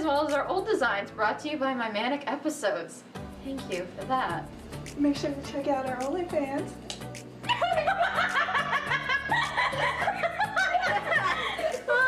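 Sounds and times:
background music: 0.0s - 12.0s
woman laughing: 7.5s - 12.0s.

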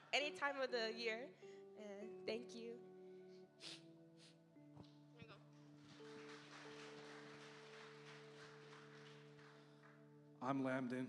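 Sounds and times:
soft background music: 0.0s - 11.0s
faint audience clapping: 5.6s - 10.9s.

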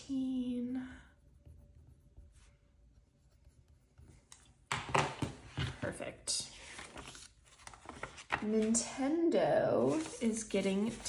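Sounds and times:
pages rustling: 6.5s - 8.9s, 9.8s - 11.0s.

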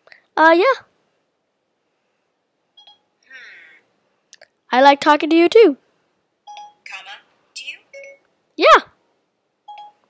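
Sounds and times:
electronic phone beep: 2.8s - 3.1s, 6.5s - 6.8s, 9.7s - 10.0s.

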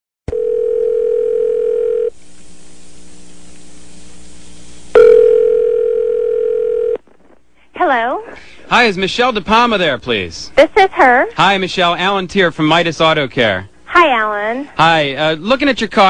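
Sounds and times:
telephone ringback tone: 0.3s - 2.1s, 5.0s - 7.0s.

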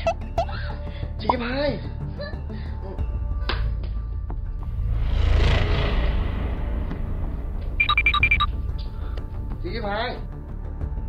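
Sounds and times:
low drone: 4.2s - 9.6s
whoosh: 4.6s - 8.1s.

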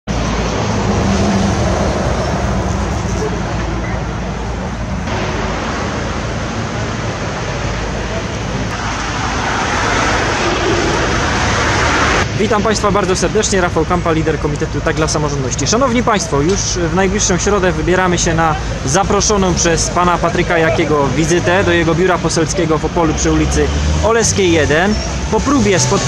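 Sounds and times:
passing cars traffic noise: 0.1s - 26.0s.

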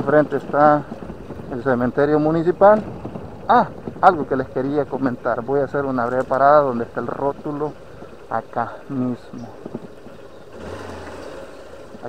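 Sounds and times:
tyre and road noise: 0.0s - 12.0s
small motorcycle engine: 7.3s - 12.0s.

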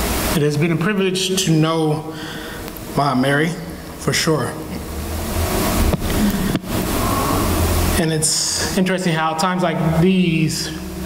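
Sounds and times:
rushing noise on microphone: 2.4s - 8.9s.

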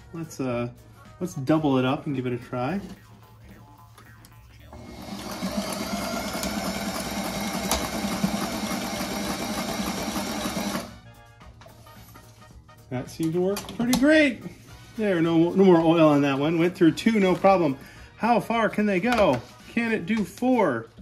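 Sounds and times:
sewing machine stitching canvas: 4.8s - 11.0s.

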